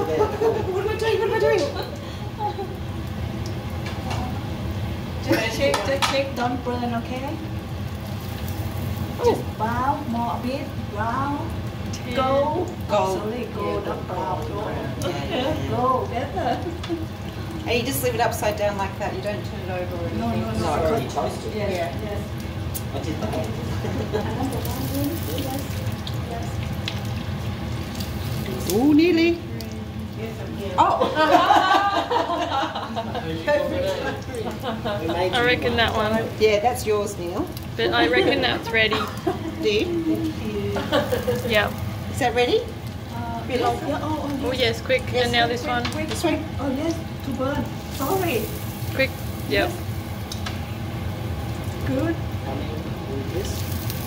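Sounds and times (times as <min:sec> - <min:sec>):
bread sizzling in hot oil: 0:00.0 - 0:54.0.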